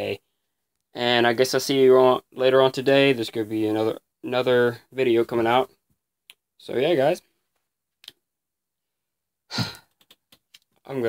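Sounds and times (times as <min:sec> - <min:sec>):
man speaking: 0:01.0 - 0:05.8, 0:06.6 - 0:07.3
man sighing: 0:09.5 - 0:09.9.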